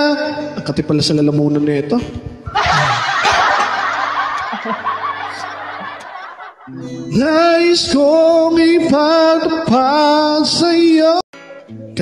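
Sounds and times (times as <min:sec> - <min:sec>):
laughter: 0:02.5 - 0:07.1
quiet backing music: 0:06.7 - 0:12.0.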